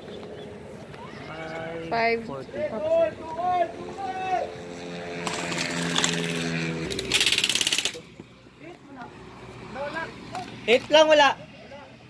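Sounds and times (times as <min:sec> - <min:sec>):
people shouting calls: 0:00.9 - 0:04.7.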